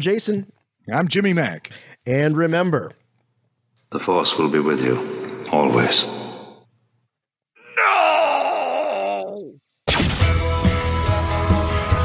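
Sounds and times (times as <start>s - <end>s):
long groaning voice: 7.6s - 9.6s.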